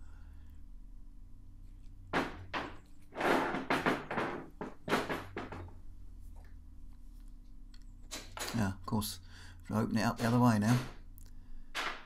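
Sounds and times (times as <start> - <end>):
faint steady hum: 0.0 - 12.0
metal knocking on workbench: 2.1 - 5.7.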